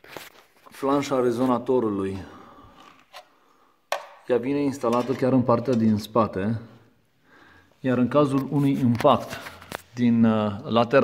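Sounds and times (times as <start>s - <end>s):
man speaking: 0.7s - 2.6s, 4.2s - 6.8s, 7.8s - 11.0s.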